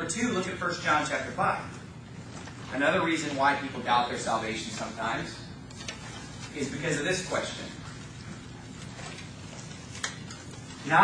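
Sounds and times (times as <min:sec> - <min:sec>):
pages being turned: 0:05.7 - 0:06.8, 0:08.0 - 0:11.0.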